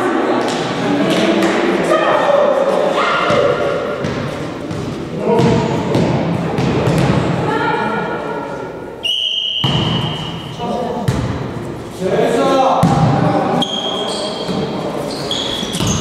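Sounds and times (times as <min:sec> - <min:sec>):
players calling out in hall: 0:00.0 - 0:16.0.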